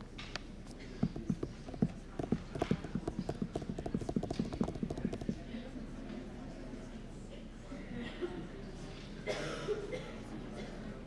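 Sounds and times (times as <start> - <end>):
murmur of voices: 0.7 - 11.0
low knocks: 1.0 - 5.3.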